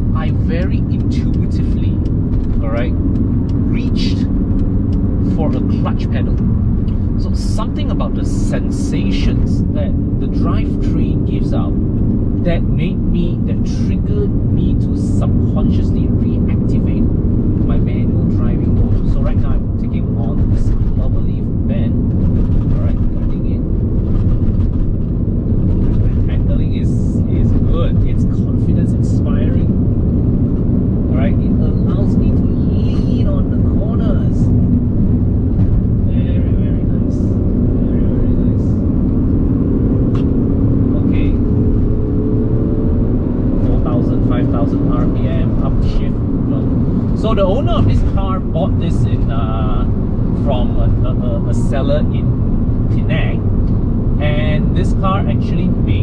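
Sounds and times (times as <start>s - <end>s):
man talking: 0.0s - 3.0s, 3.6s - 4.3s, 5.2s - 6.4s, 7.2s - 11.8s, 12.4s - 22.0s, 22.6s - 23.6s, 25.8s - 29.7s, 31.1s - 34.5s, 36.1s - 38.8s, 40.9s - 41.4s, 43.6s - 52.3s, 52.9s - 53.4s, 54.2s - 56.0s
car engine and road drone: 0.0s - 56.0s.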